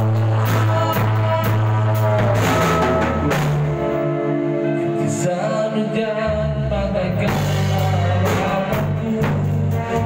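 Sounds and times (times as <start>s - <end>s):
drum kit: 0.0s - 4.6s, 6.3s - 10.0s
electric guitar chords: 0.0s - 10.0s.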